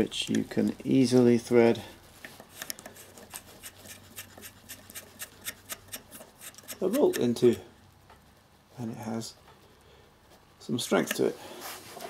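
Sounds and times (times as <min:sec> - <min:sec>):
bolt threads scratchy ticks: 0:02.2 - 0:08.2, 0:10.8 - 0:11.3.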